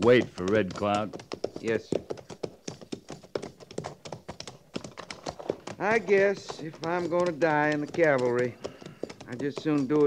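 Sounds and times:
horse hooves clopping: 0.0s - 10.0s.

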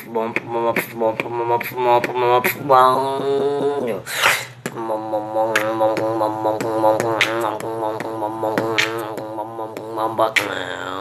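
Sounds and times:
beatboxing percussive hits: 0.0s - 11.0s.

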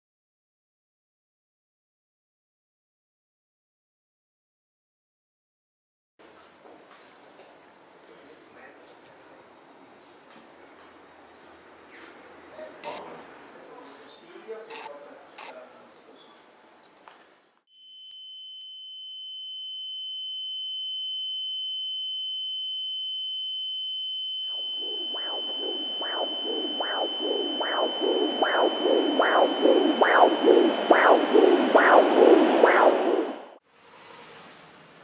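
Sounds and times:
high-pitched electronic tone: 17.7s - 33.6s
doppler heartbeat whooshing pulses: 24.4s - 33.6s.

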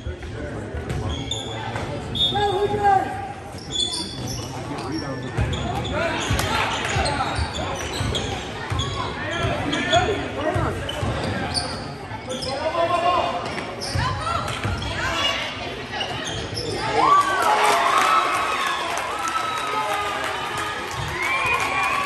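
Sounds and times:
sneakers squeaking: 0.1s - 2.7s, 3.4s - 17.0s
spectators talking and calling out: 0.4s - 22.0s.

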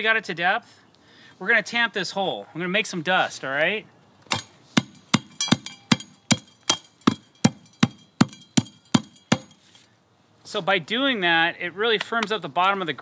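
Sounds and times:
hand tamper pounding soil: 4.3s - 9.7s.

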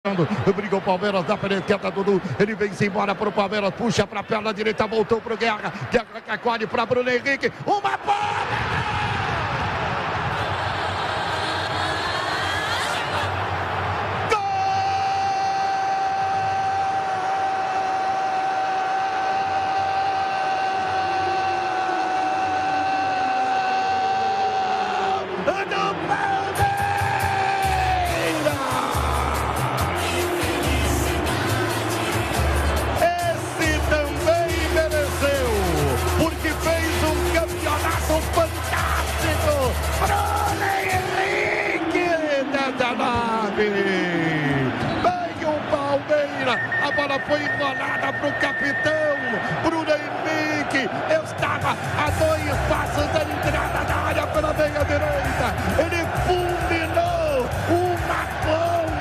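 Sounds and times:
commentator shouting goal: 0.0s - 9.1s, 14.2s - 29.8s, 33.0s - 59.0s
music with pulsing beat: 27.0s - 41.2s.

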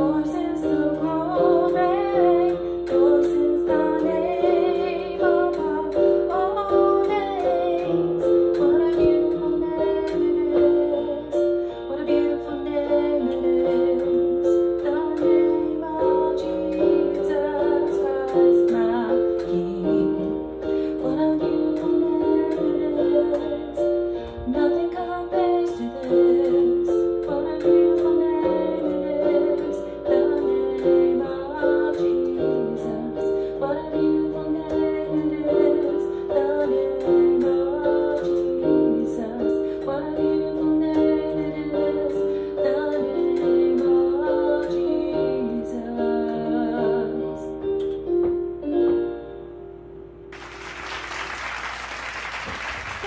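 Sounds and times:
woman singing: 0.0s - 47.9s
keyboard chords: 0.0s - 51.7s.

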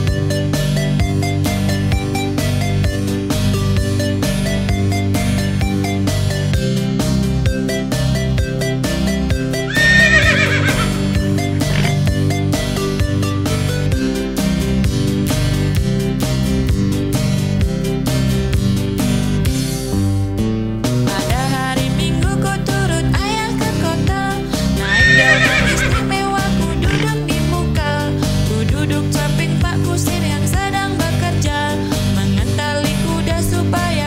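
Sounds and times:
horse whinnying: 9.7s - 12.1s, 24.8s - 27.3s.

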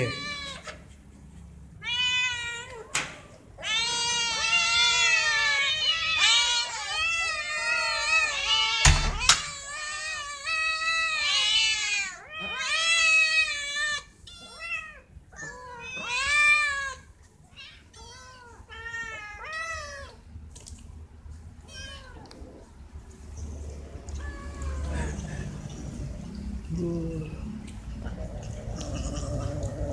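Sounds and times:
cats and kittens meowing: 0.0s - 20.4s, 21.5s - 26.7s, 27.3s - 29.9s.

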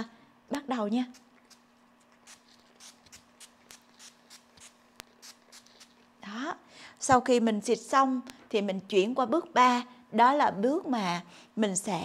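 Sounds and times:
spray bottle hissing: 2.2s - 6.0s.

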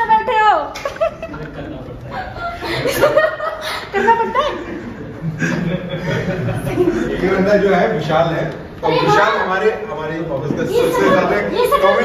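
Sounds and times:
people laughing: 0.8s - 7.8s.

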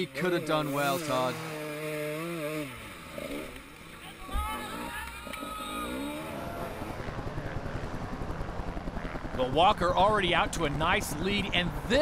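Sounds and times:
dirt bike engine revving: 0.0s - 9.2s.

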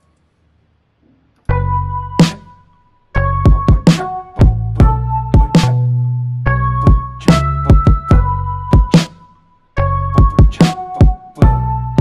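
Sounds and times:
synthesized melody and bassline: 1.5s - 12.0s.

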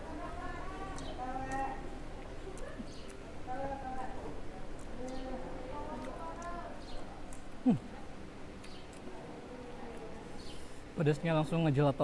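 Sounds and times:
person chewing food: 8.5s - 10.2s.

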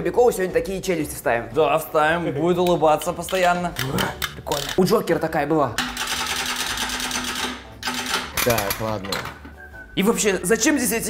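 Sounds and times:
wind-up toy clattering: 3.1s - 4.8s.

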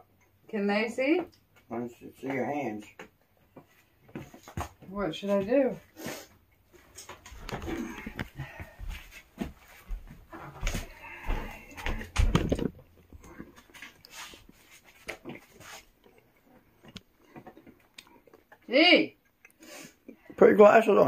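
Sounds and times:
heavy thumps: 9.4s - 12.9s.

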